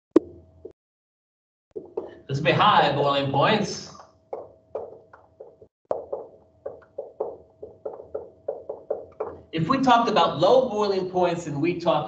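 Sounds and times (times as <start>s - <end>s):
marker writing on whiteboard: 1.8s - 2.3s, 4.0s - 9.5s.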